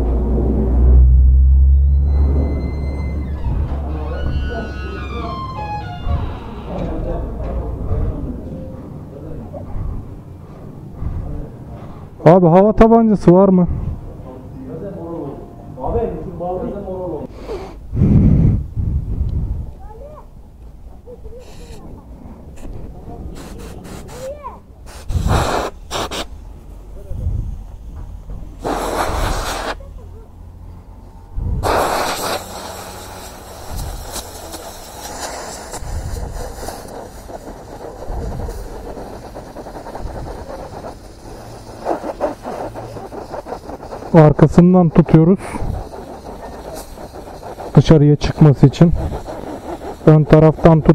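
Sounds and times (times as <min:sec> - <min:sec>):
loud low rumble: 0:00.0 - 0:11.8, 0:13.6 - 0:14.5, 0:17.9 - 0:19.9, 0:29.9 - 0:35.0
compressed air blow gun hissing: 0:23.3 - 0:26.4, 0:28.6 - 0:29.9, 0:31.6 - 0:50.9.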